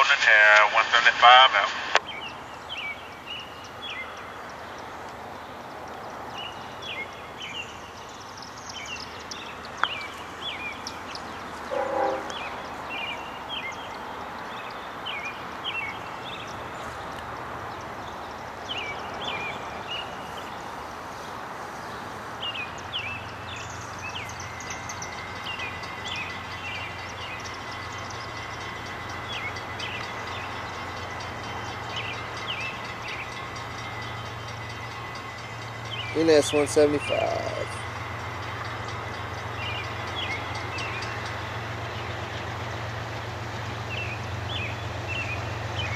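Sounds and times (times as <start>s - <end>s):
diesel locomotive engine hum: 0.0s - 45.9s
freight train rumbling by: 0.0s - 45.9s
small birds chirping: 2.0s - 45.9s.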